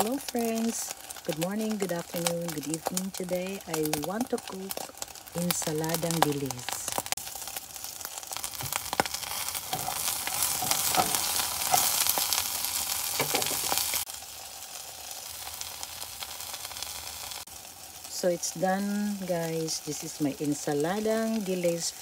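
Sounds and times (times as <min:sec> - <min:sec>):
fish sizzling in a pot: 0:00.0 - 0:22.0.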